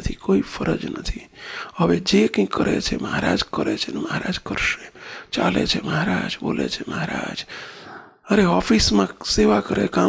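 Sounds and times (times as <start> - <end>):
man talking into a microphone: 0.0 - 7.5, 8.3 - 10.0.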